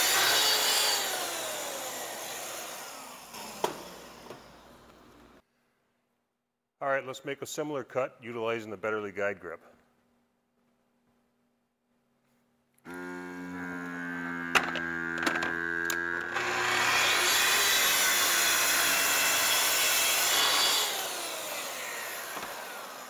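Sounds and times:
saw cutting through panel: 0.0 - 4.7, 12.9 - 23.0
track saw whine: 0.0 - 4.9, 12.9 - 23.0.

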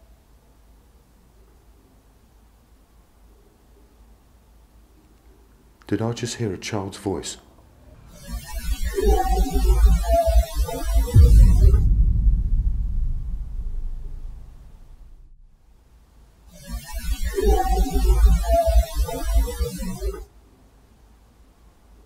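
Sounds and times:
hiss of recorded audio: 0.0 - 18.8, 20.2 - 22.0
low rumble: 8.8 - 15.8.

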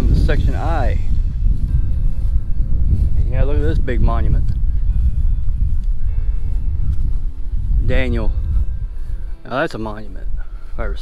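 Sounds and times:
faint background music: 0.0 - 11.0
wind rumbling on microphone: 0.0 - 11.0.

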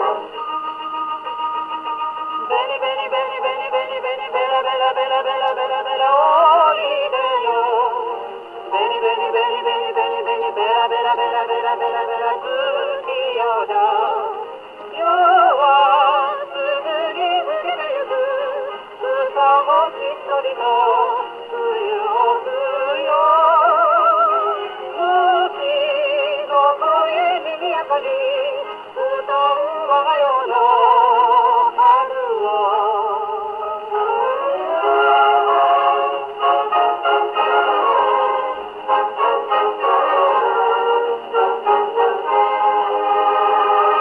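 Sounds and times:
jazz song on gramophone record: 0.0 - 44.0.

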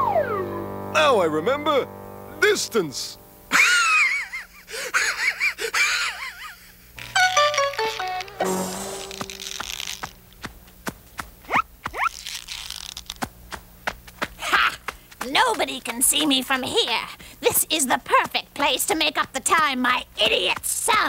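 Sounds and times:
comic cartoon music: 0.0 - 1.7, 7.0 - 9.8
crash-like burst: 8.4 - 9.6.

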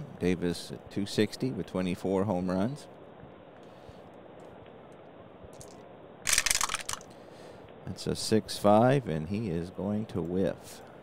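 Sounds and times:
dice clattering in wooden tray: 6.3 - 7.0.

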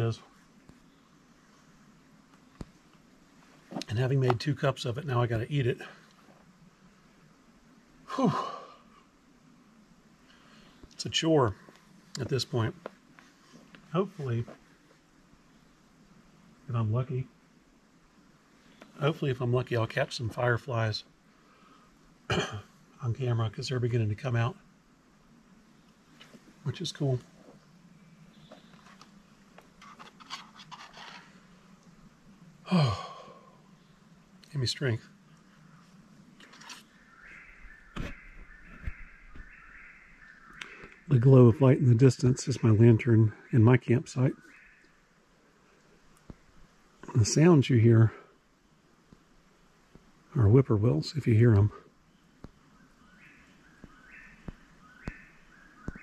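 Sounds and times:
faint rustles and scrapes: 0.0 - 4.5, 10.3 - 15.1, 28.4 - 32.0, 34.8 - 37.0
faint background hiss: 0.0 - 56.0
faint low hum: 0.0 - 56.0.

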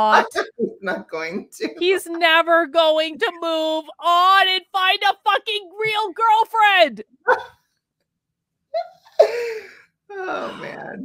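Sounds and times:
person sneezing: 9.1 - 9.6
catch of breath: 9.2 - 9.9.

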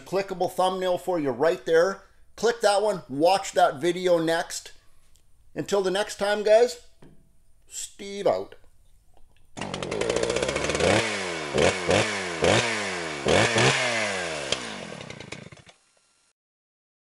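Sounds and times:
small gasoline engine revving: 9.6 - 16.3.

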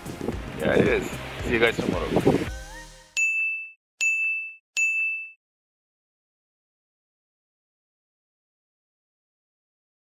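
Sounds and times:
bright high ding: 3.2 - 5.4.

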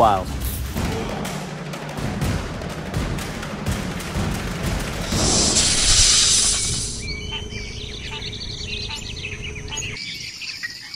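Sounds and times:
insects buzzing: 4.2 - 10.9
loud rushing whoosh: 4.7 - 7.1
birds chirping: 4.9 - 10.9.

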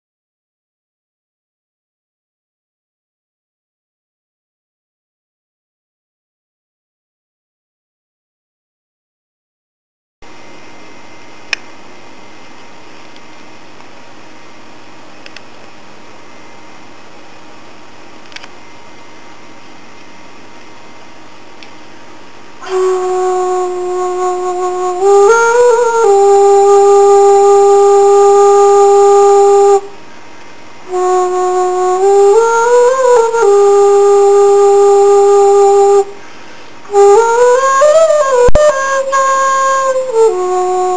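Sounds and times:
camera self-noise hiss: 10.3 - 32.1
bamboo flute holding a long note: 22.5 - 40.9
faint steady whistle: 22.6 - 40.9.

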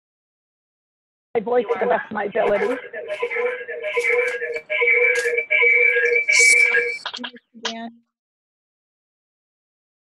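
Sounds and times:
electronic glitch tones: 2.4 - 7.4.

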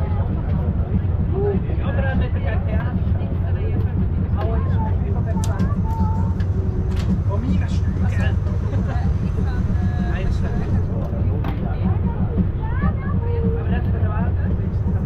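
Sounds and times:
train rumbling: 0.0 - 15.0.

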